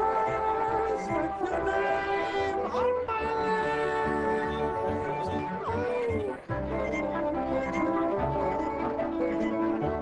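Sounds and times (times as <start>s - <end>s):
pop band with strings playing: 0.0s - 10.0s.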